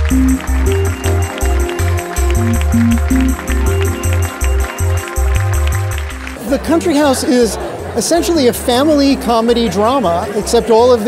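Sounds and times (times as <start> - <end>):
upbeat music with pulsing bass: 0.0 - 11.0.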